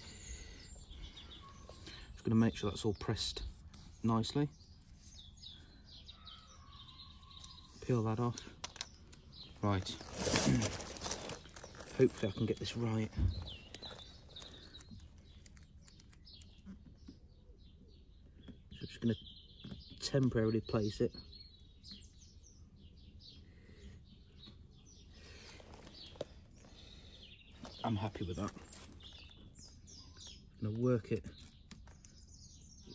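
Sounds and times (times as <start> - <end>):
small birds chirping: 0.0 - 32.9
vinyl decal crackling: 9.9 - 16.6.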